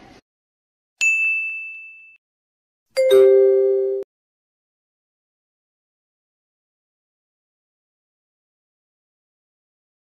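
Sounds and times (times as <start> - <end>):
high ding: 1.0 - 2.2, 3.0 - 4.1
two-note chime: 3.0 - 4.0.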